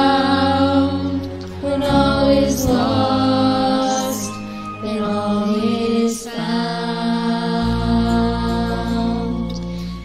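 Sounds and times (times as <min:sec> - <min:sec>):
choir singing long notes: 0:00.0 - 0:10.0
low steady accompaniment: 0:00.0 - 0:10.0.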